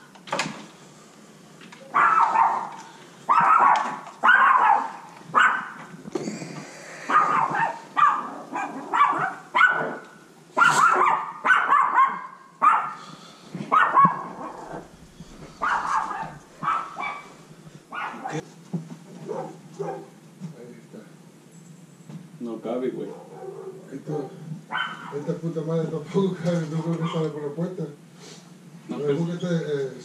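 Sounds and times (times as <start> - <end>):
dog barking: 1.9 - 5.9, 7.1 - 13.0, 13.6 - 18.4, 19.2 - 20.2, 23.0 - 25.3, 27.0 - 27.2.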